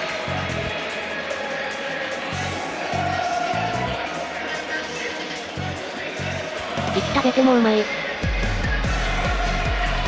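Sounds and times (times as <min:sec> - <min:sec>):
music with pulsing bass: 0:00.0 - 0:00.9, 0:08.2 - 0:10.0.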